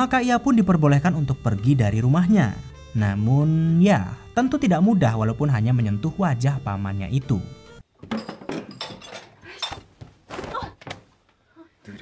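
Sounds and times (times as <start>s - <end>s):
woman grunting: 10.4s - 10.8s.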